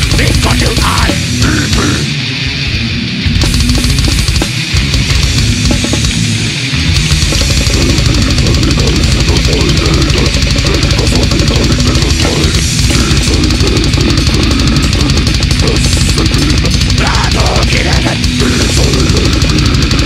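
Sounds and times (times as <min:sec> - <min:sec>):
extreme metal music: 0:00.0 - 0:20.0.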